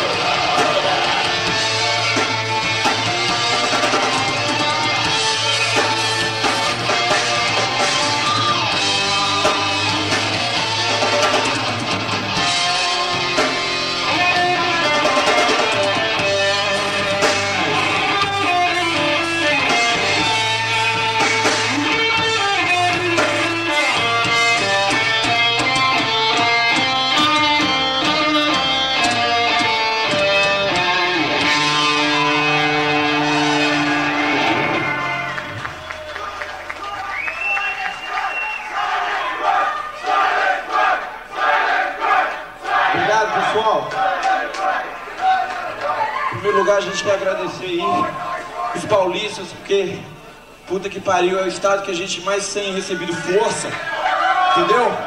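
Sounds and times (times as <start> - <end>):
live rock band playing: 0.0 - 36.8
audience cheering and clapping: 0.0 - 49.1, 52.9 - 55.0.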